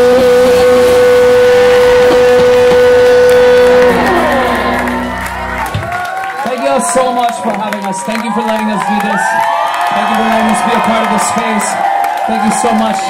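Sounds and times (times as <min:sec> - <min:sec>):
electric guitars ringing chord: 0:00.0 - 0:05.7
steady held tone: 0:00.0 - 0:05.8
crowd cheering and whooping: 0:00.0 - 0:13.0.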